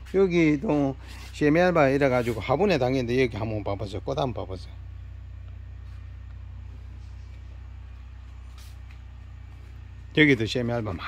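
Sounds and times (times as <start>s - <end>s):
mechanical hum with flutter: 0.0s - 11.0s.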